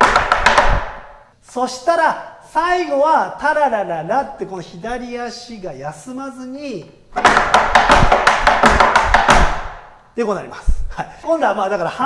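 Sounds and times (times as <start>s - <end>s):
tap shoes on wooden board: 0.0s - 1.0s, 7.2s - 9.8s.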